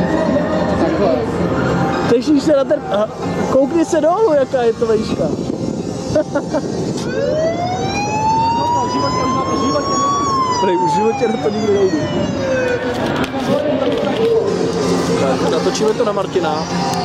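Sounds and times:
voices talking: 6.0s - 17.0s
siren wailing: 7.0s - 13.6s.

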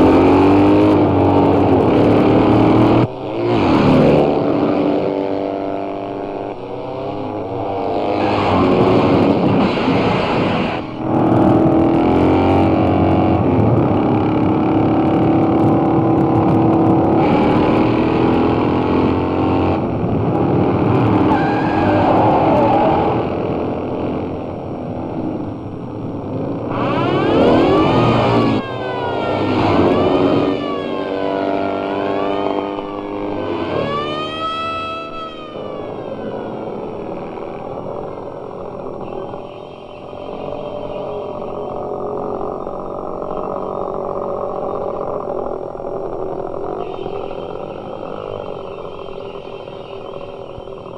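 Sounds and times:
motorcycle engines revving: 0.0s - 50.9s.

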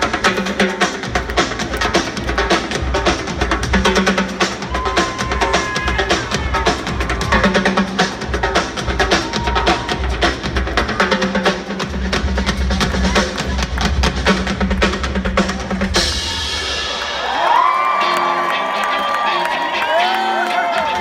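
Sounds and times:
live band drumming: 0.0s - 21.0s
crowd cheering: 4.0s - 11.8s, 12.4s - 21.0s.

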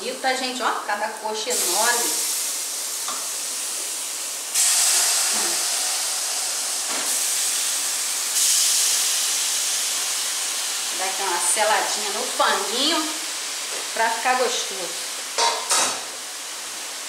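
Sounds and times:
chicken sizzling in hot oil: 0.8s - 17.0s.

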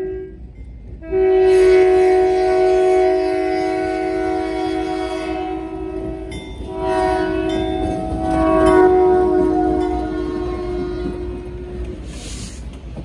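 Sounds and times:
train cars rumbling on rails: 0.0s - 13.0s
locomotive air horn blast: 1.0s - 12.6s.

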